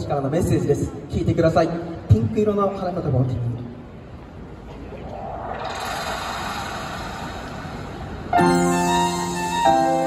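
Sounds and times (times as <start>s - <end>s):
street traffic hiss and rumble: 0.0s - 10.0s.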